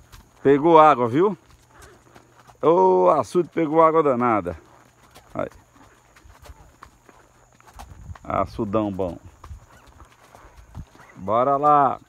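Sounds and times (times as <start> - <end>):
horse hooves clopping: 0.0 - 12.0.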